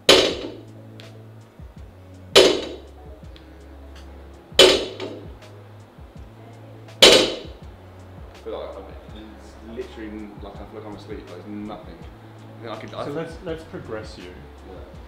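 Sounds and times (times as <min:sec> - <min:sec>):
barbell clanking on rubber floor: 0:00.1 - 0:00.6, 0:02.4 - 0:02.8, 0:04.6 - 0:05.3.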